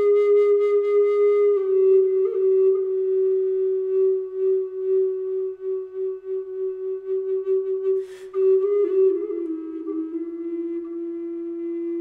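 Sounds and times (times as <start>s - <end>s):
flute holding long note: 0.0s - 12.0s.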